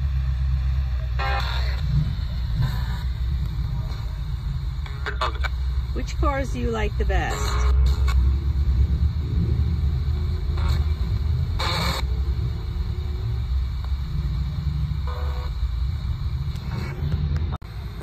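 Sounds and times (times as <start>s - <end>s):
low vehicle rumble: 0.0s - 18.0s
radio static and station snippets: 0.0s - 18.0s.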